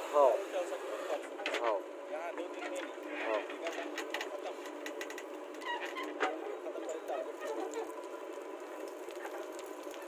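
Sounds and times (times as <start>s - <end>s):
soil and stones clicking: 7.5s - 10.0s.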